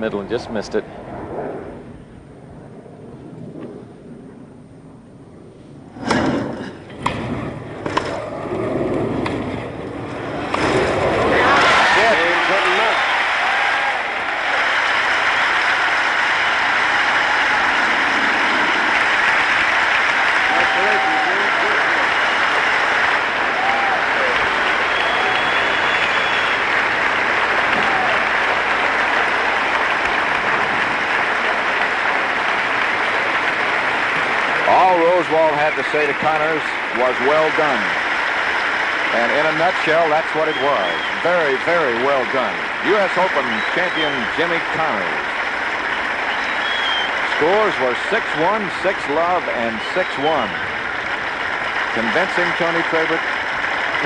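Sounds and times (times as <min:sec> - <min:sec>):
crowd cheering and applauding: 0:10.2 - 0:54.0.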